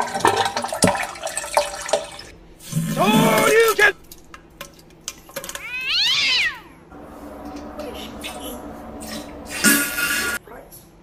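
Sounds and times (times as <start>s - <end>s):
cat meowing: 5.6s - 6.8s.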